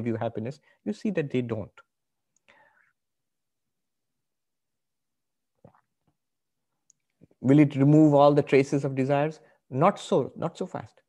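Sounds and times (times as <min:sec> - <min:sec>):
faint breath: 0:02.5 - 0:03.0.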